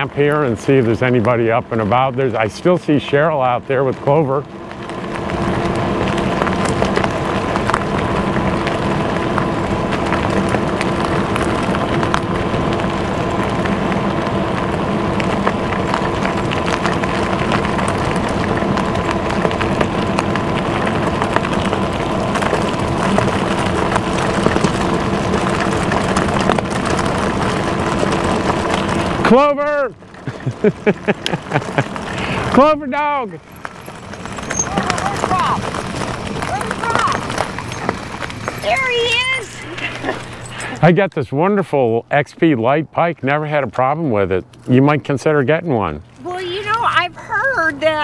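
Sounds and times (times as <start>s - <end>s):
bike tyres rushing on gravel: 0.0s - 48.0s
faint steady whine: 0.0s - 48.0s
gravel crackling clicks: 0.0s - 48.0s.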